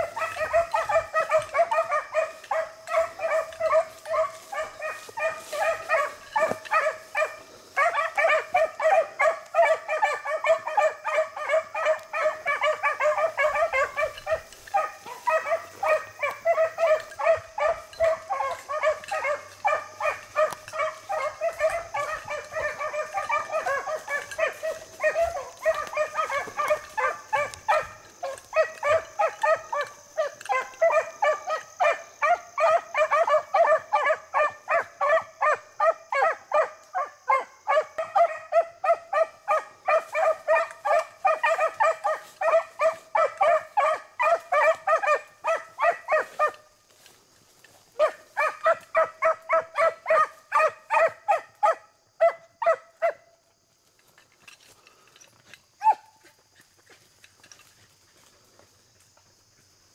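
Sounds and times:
beagles baying: 0:00.0 - 0:53.2.

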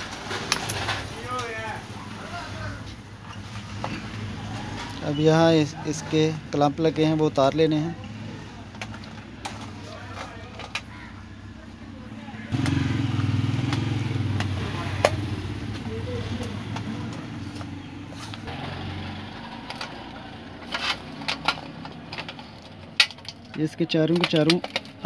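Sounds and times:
vehicle engine rumble: 0:00.0 - 0:23.6
metal clamps clicking and tapping: 0:20.6 - 0:25.0.

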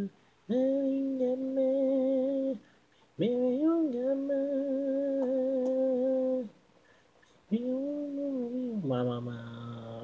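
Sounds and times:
singing voice holding notes: 0:00.0 - 0:06.6, 0:07.2 - 0:10.0.

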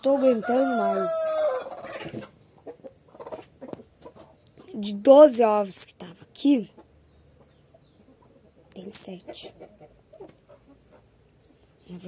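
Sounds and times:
hen calling: 0:00.0 - 0:04.9.

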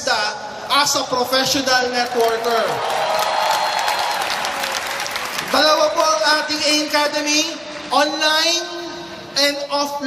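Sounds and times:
audience applauding: 0:02.0 - 0:06.2.

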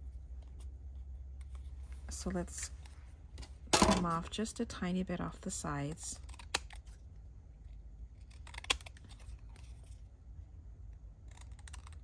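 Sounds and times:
scissors snipping paper: 0:08.2 - 0:09.8, 0:11.2 - 0:12.0.

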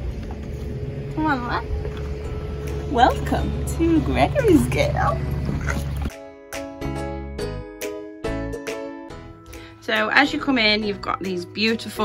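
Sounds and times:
low hum: 0:00.0 - 0:06.1.

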